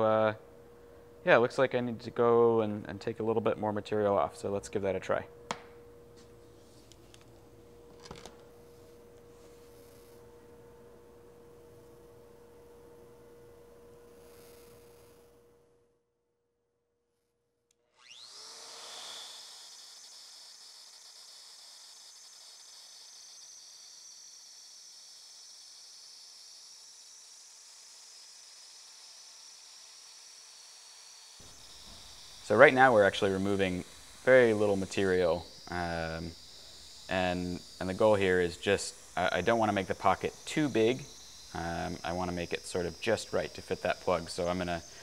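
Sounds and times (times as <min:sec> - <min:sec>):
faint steady hum: 0:00.0 - 0:15.9, 0:31.4 - 0:45.0
router spindle whining: 0:06.8 - 0:15.4, 0:17.8 - 0:45.0
router cutting wood: 0:14.1 - 0:15.2, 0:17.8 - 0:45.0.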